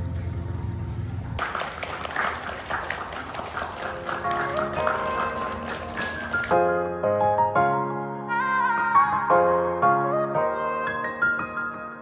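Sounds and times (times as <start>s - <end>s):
audience noise: 1.4s - 6.6s
woman singing: 8.2s - 11.6s.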